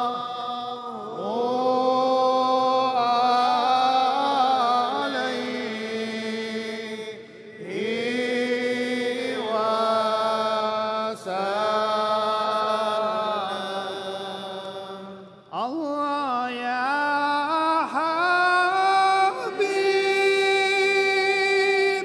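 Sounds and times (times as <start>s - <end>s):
man chanting over a pa: 0.0s - 22.0s.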